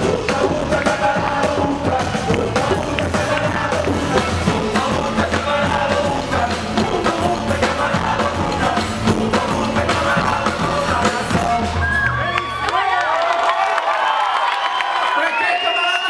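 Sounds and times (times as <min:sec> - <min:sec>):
steady drum beat: 0:00.0 - 0:11.8
upbeat rock band music: 0:00.0 - 0:12.1.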